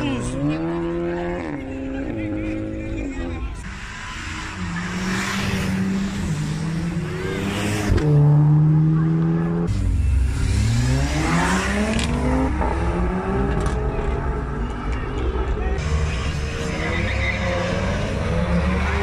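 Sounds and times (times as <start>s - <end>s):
car engines revving and accelerating: 0.0s - 19.0s.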